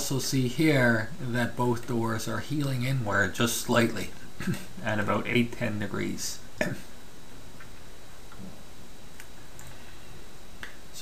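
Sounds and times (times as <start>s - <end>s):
low room hiss: 0.0s - 11.0s
faint sharp clicks: 9.1s - 9.8s, 10.6s - 10.8s.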